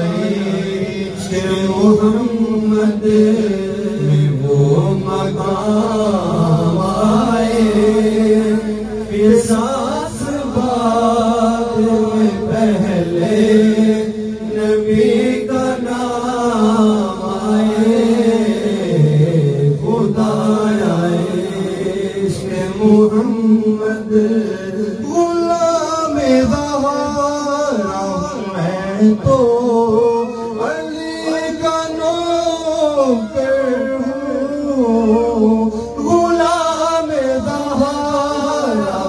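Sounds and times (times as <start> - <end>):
men chanting into microphones: 0.0 - 39.0
steady held drone: 0.0 - 39.0.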